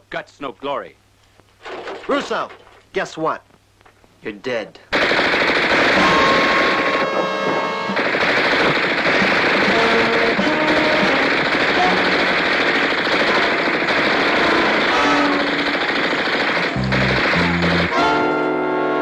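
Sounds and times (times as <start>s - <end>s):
automatic gunfire: 4.9s - 18.1s
dramatic music: 16.6s - 18.4s
low musical notes: 16.7s - 19.0s.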